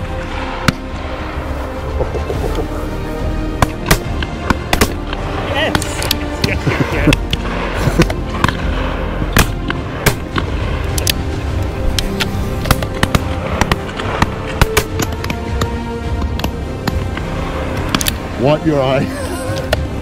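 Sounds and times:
background music: 0:00.0 - 0:20.0
shotgun shots: 0:09.3 - 0:10.4.

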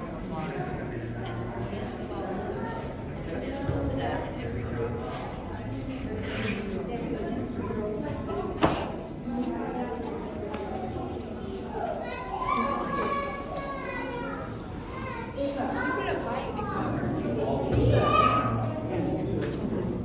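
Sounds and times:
children talking and calling out: 0:06.2 - 0:19.2.

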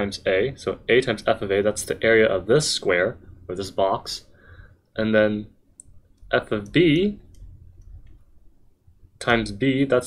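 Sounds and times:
person speaking: 0:00.0 - 0:08.3
low steady hum: 0:00.0 - 0:10.0.

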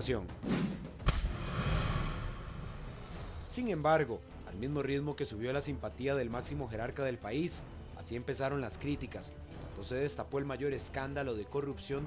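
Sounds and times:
sharp impact hit: 0:01.0 - 0:03.4
rumbling boom: 0:01.1 - 0:03.4.

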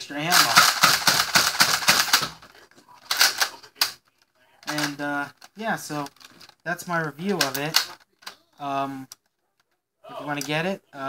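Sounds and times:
rapid plastic clicking: 0:00.3 - 0:08.4.

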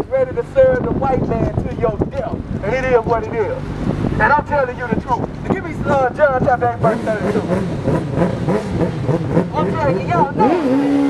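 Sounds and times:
men's raised voices: 0:00.0 - 0:07.6.

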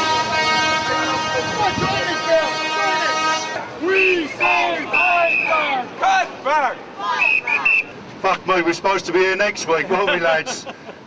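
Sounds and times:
horn long steady note: 0:00.0 - 0:05.5
crowd voices: 0:00.0 - 0:11.0.

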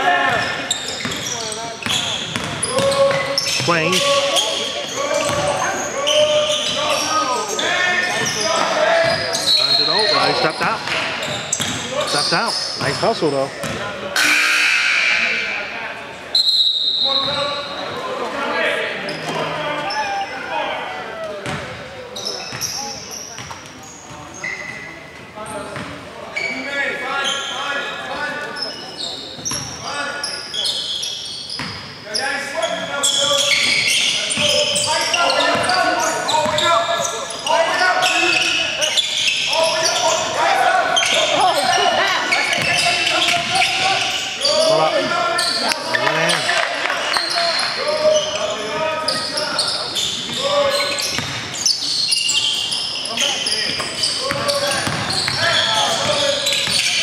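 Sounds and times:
players calling out: 0:00.0 - 0:31.4, 0:32.1 - 0:57.0
basketball bouncing on hardwood: 0:54.3 - 0:55.4.

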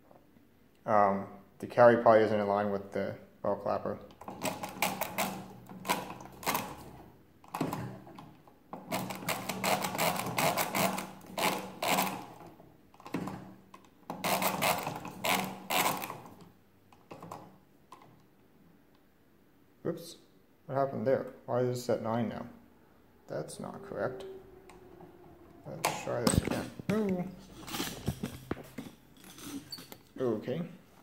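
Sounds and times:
calculator gearwork clicking: 0:08.9 - 0:12.4.

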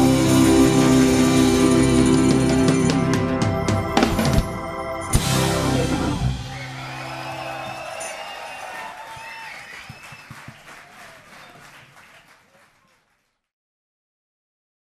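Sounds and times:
band chord ringing out: 0:00.0 - 0:06.9
audience applauding and cheering: 0:05.8 - 0:13.5.

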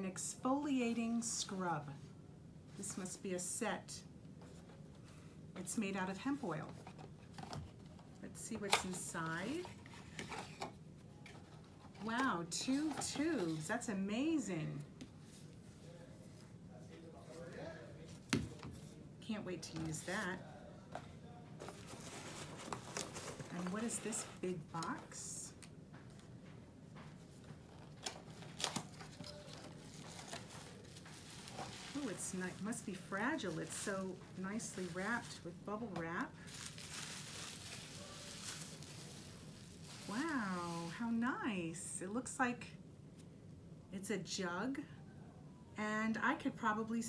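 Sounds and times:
cardboard and plastic wrap rustling: 0:06.4 - 0:13.7, 0:19.6 - 0:20.4, 0:21.6 - 0:26.3, 0:27.0 - 0:41.2.

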